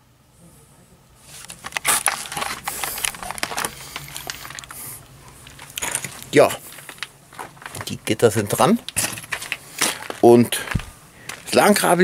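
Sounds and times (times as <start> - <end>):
irregular scrapes and clicks: 1.3 - 8.0.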